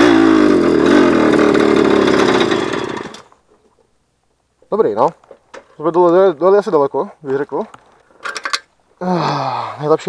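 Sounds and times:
moped engine running: 0.0 - 3.3.

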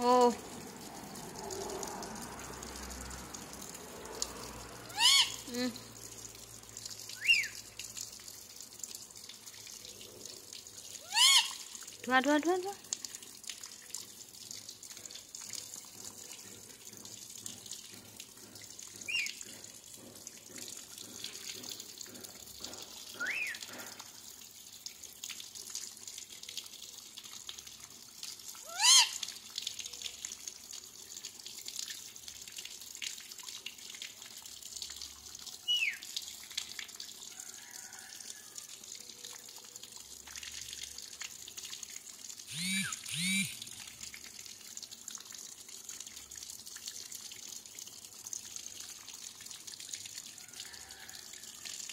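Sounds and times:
parakeet squawks: 4.9 - 5.5, 11.1 - 11.6, 28.7 - 29.2.

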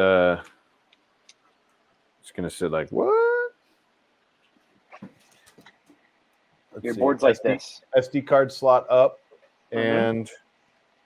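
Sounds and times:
faint room noise: 0.0 - 11.0
man saying what: 2.8 - 3.5.

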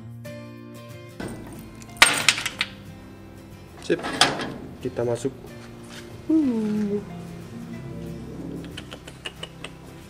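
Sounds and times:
background music: 0.0 - 10.0
metal door latch clattering: 1.2 - 6.3.

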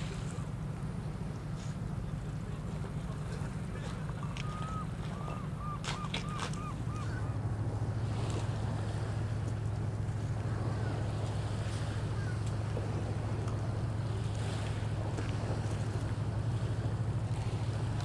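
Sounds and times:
boat engine idling: 0.0 - 18.0.

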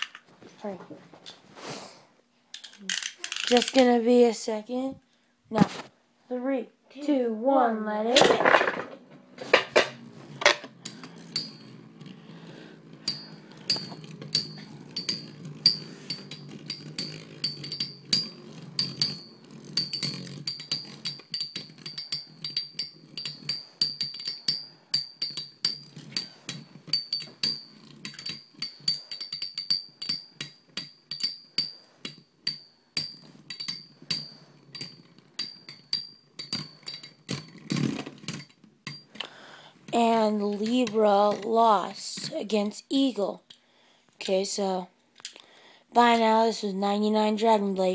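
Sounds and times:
spinning tops clashing clicks: 2.6 - 4.0, 12.8 - 39.3
high whine of spinning tops: 8.4 - 39.2.

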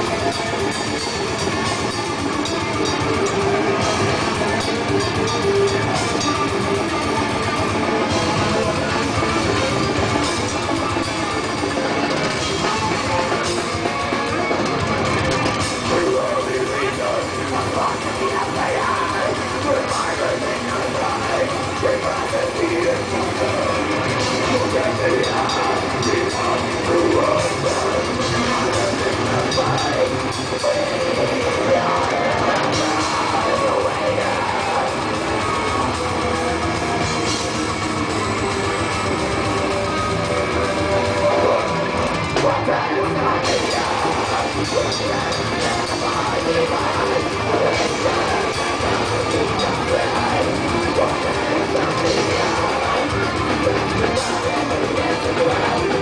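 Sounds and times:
death metal band playing live: 0.0 - 56.0
distorted guitars: 0.0 - 56.0
rapid dense drumming: 0.0 - 56.0.

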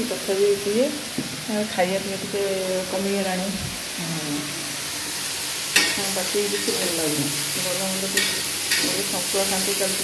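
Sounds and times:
food sizzling in hot oil: 0.0 - 10.0.

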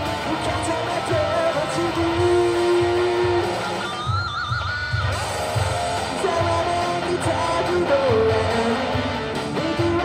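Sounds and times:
electric guitar lead note: 0.0 - 10.0
steady drum beat: 0.0 - 10.0.

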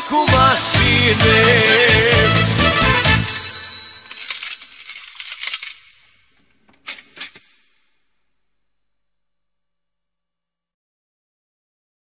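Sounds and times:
coins clattering and jingling: 3.3 - 7.6.

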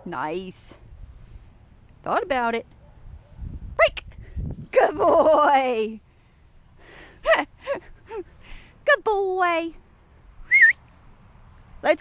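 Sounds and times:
person whistling: 10.5 - 10.8.

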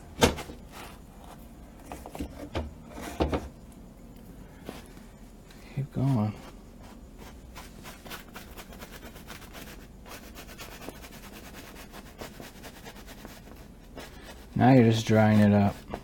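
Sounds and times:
scratching and rubbing strokes: 5.9 - 16.0.

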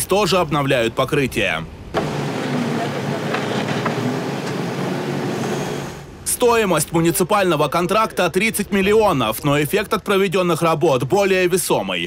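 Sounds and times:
backhoe loader running: 2.0 - 6.1.

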